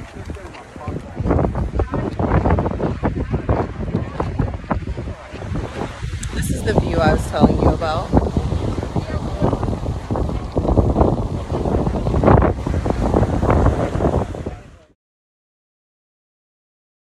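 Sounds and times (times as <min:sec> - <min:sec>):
voices: 0:00.0 - 0:10.5
surf breaking on beach: 0:00.0 - 0:15.0
wind on microphone: 0:00.0 - 0:15.0.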